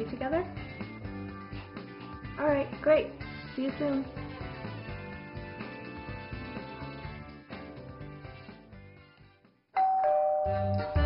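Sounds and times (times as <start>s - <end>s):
background music with a beat: 0.0s - 9.6s, 10.5s - 11.0s
two-tone doorbell chime: 9.8s - 11.0s.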